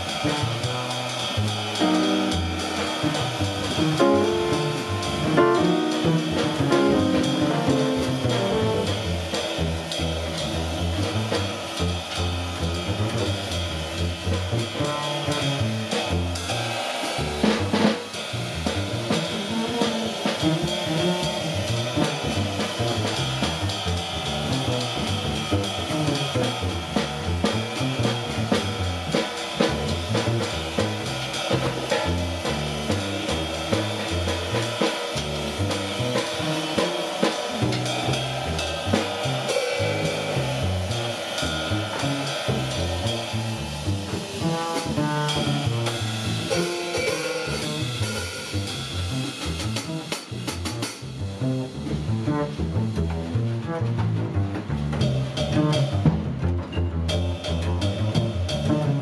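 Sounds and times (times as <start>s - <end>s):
plucked upright bass: 0.0s - 16.3s, 20.5s - 34.7s, 39.9s - 46.6s, 48.8s - 59.0s
drum kit played with sticks: 0.0s - 59.0s.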